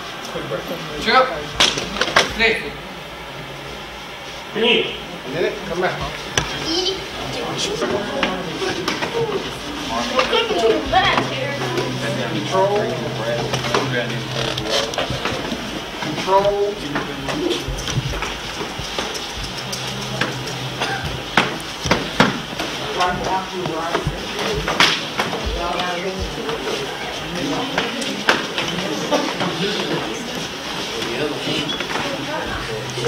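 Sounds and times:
indistinct voices talking: 0:04.5 - 0:33.0
low hum: 0:09.2 - 0:27.4.

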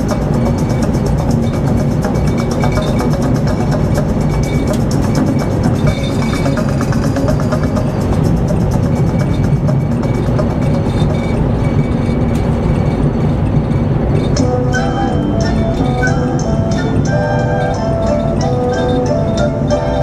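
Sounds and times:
radio music with steady beat: 0:00.0 - 0:19.5
car road noise: 0:00.0 - 0:20.0.

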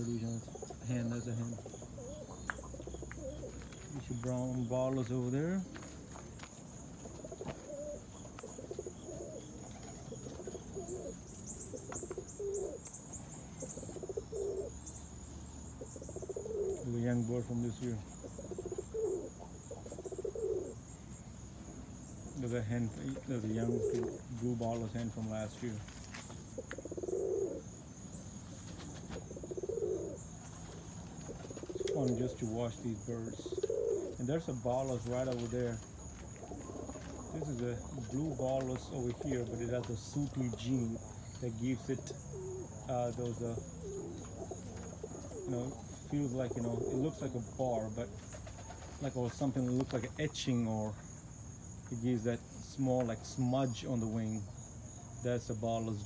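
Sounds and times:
pigeons cooing: 0:00.0 - 0:51.0.

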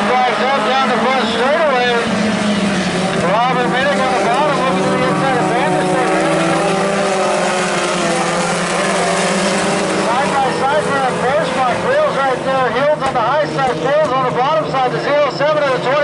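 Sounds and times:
race car engines droning: 0:00.0 - 0:16.0.

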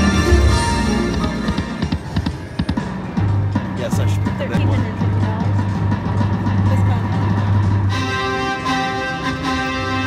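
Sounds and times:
slot machine electronic music: 0:00.0 - 0:03.2.

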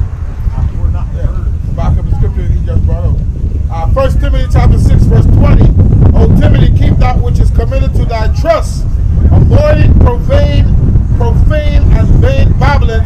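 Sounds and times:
wind buffeting microphone: 0:00.0 - 0:13.0
man speaking loudly: 0:00.6 - 0:13.0.

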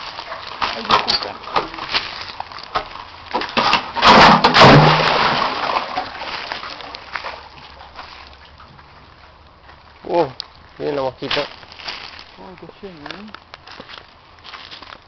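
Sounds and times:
water sloshing: 0:00.0 - 0:10.7
loud splash into water: 0:04.0 - 0:06.5.

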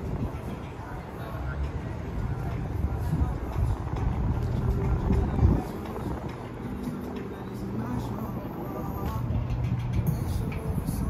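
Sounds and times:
faint indistinct voices: 0:00.0 - 0:11.0.

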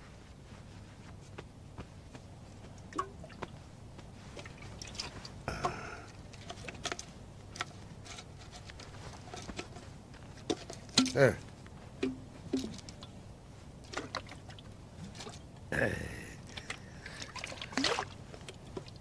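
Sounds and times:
low steady hum: 0:00.0 - 0:19.0
clicks and rustles of handling: 0:06.1 - 0:13.2.

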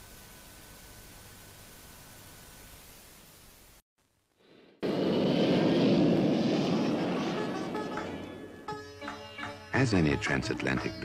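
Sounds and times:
jet airliner engine roar: 0:04.8 - 0:08.7.

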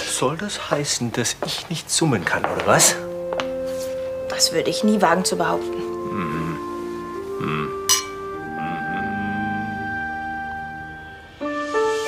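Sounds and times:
background music of held notes: 0:02.0 - 0:12.0
drinking glasses clinking: 0:07.9 - 0:08.3.

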